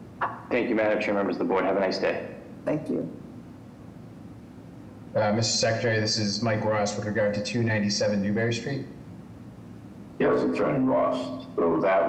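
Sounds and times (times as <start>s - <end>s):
low steady hiss: 0.0s - 12.0s.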